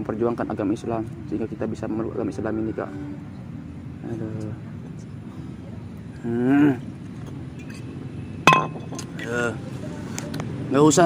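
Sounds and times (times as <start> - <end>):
glass bottle clinking on stone: 8.4 - 9.1.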